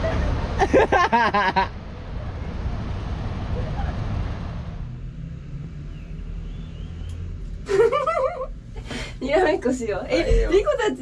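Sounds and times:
people laughing: 0.0s - 1.7s, 7.7s - 8.5s
road traffic rumbling: 0.0s - 11.0s
voices: 1.8s - 4.1s, 9.2s - 11.0s.

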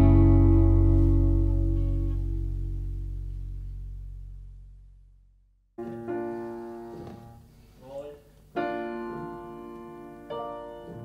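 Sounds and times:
piano chords: 0.0s - 4.8s, 5.8s - 7.5s, 8.6s - 11.0s.

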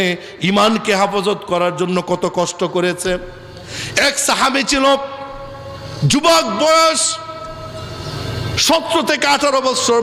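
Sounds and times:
man's amplified voice: 0.0s - 7.8s, 8.6s - 10.0s.

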